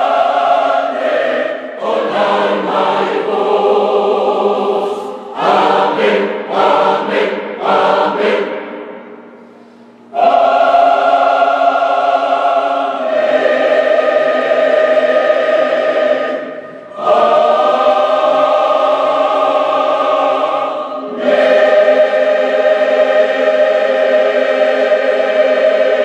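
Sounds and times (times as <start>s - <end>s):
choir singing held chords: 0.0s - 26.0s.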